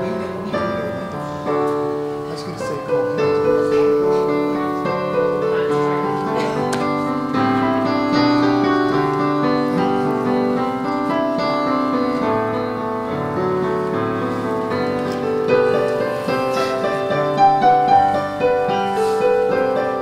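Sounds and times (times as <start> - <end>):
piano playing slow chords: 0.0 - 20.0.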